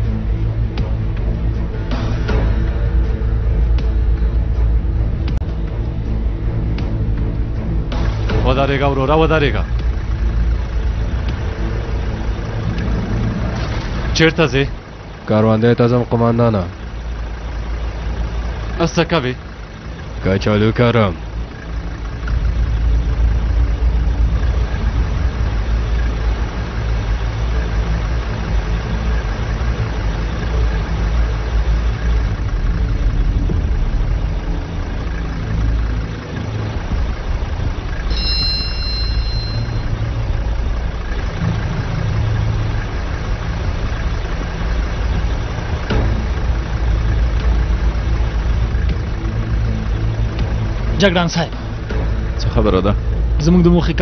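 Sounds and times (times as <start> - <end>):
tractor engine idling: 0.0 - 54.0
high-pitched tone: 38.1 - 40.5.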